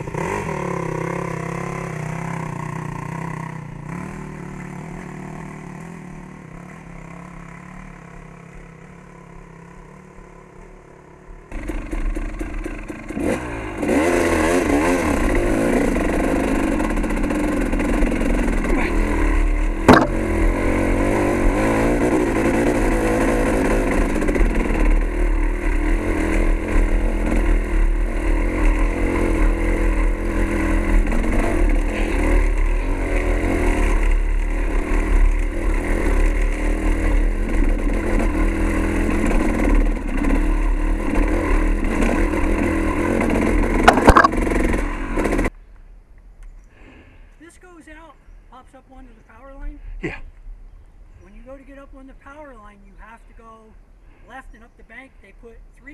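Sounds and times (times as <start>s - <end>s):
dirt bike engine revving: 0.0s - 10.3s, 10.9s - 45.5s
sharp knock: 19.9s - 20.3s, 43.9s - 44.5s.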